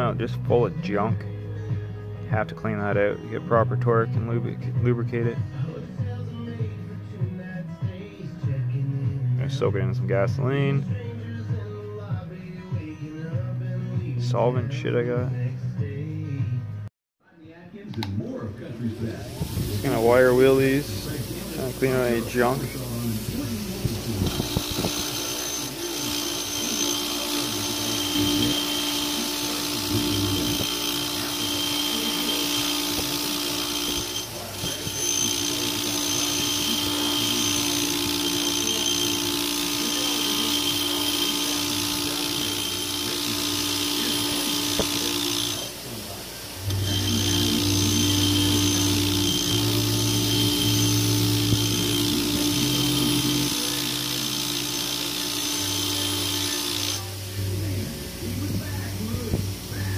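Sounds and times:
wire wheel brushing bolt threads: 19.4 - 59.7
bench grinder motor whine: 19.5 - 59.9.

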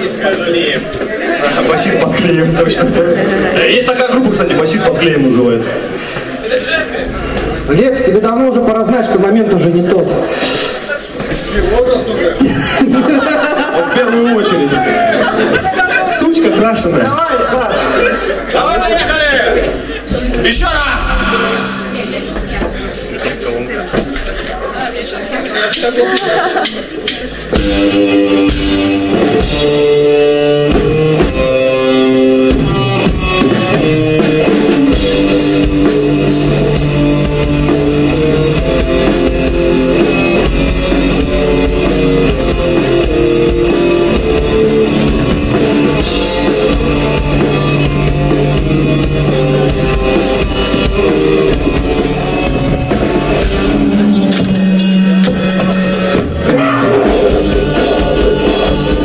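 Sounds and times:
bass guitar: 0.0 - 13.7, 14.4 - 25.2, 26.3 - 59.0
drum kit: 4.3 - 9.2, 18.0 - 24.6, 25.6 - 59.0
electric guitar chords: 16.7 - 24.2, 27.2 - 59.0.

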